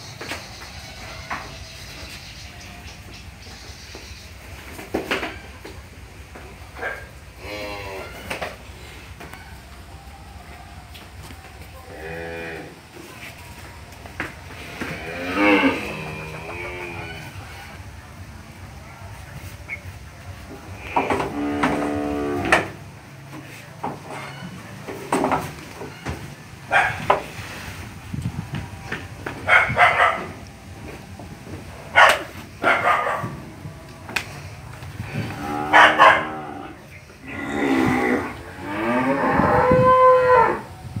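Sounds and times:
calf bawling: 0:35.4 - 0:39.0.

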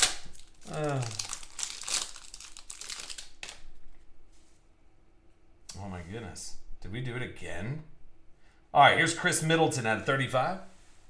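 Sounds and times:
foil wrapper crinkling and tearing: 0:00.0 - 0:03.8
cards rustling: 0:00.0 - 0:03.9.

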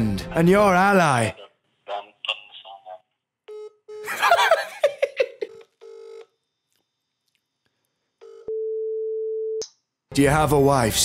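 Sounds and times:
burst of laughter: 0:04.1 - 0:05.5
telephone line tones: 0:05.5 - 0:06.3, 0:08.2 - 0:09.6.

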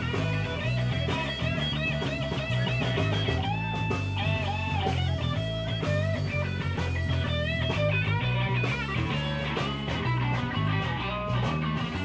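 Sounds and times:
blues-rock band playing: 0:00.0 - 0:12.0.

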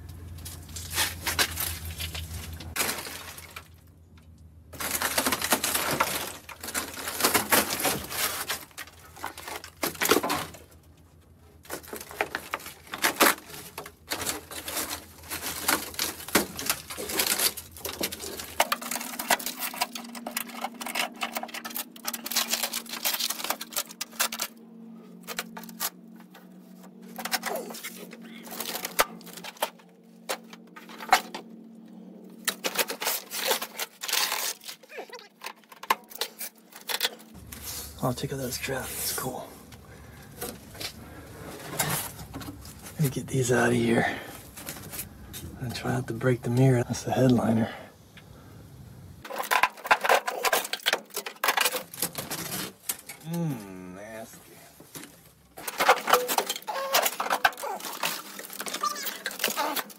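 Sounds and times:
rust flakes clicking: 0:00.0 - 0:47.5, 0:49.2 - 0:59.9
sheet metal crunching and scraping: 0:04.7 - 0:24.6, 0:32.4 - 0:47.8, 0:49.2 - 0:53.6, 0:54.2 - 0:59.9.

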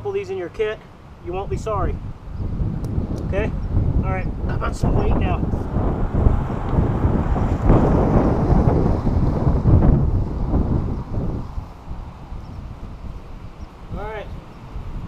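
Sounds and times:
gusty wind on microphone: 0:01.2 - 0:15.0.

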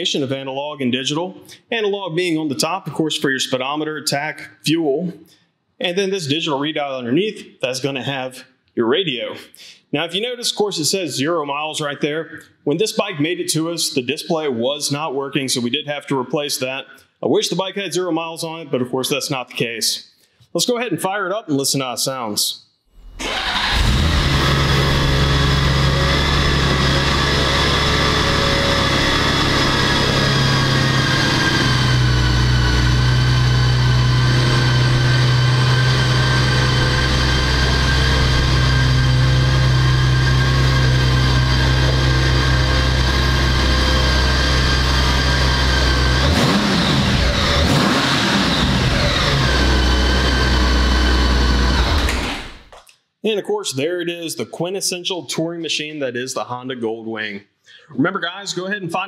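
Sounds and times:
motorcycle engine idling and revving: 0:23.6 - 0:52.4.

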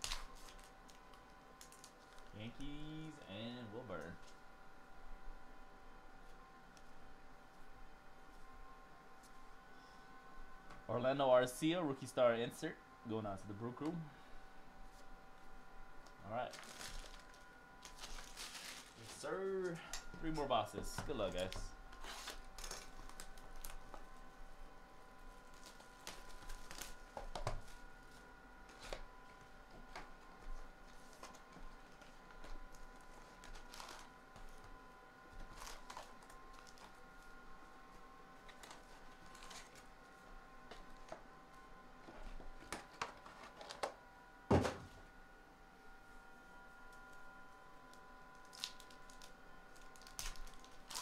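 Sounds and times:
foil packs crinkling: 0:00.0 - 0:02.4, 0:16.3 - 0:24.1, 0:25.3 - 0:34.7, 0:35.3 - 0:37.4, 0:38.4 - 0:40.0, 0:47.9 - 0:51.0
faint steady whine: 0:00.0 - 0:51.0.

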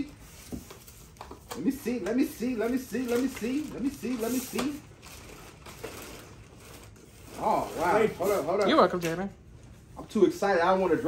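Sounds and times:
cardboard and packaging rustling: 0:00.0 - 0:09.8.

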